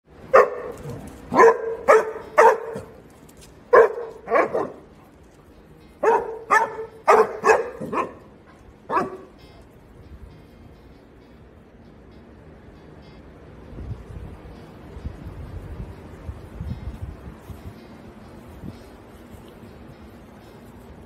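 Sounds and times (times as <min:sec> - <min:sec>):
dog barking: 0:00.3 - 0:03.0, 0:03.7 - 0:04.8, 0:06.0 - 0:08.3, 0:08.9 - 0:09.3.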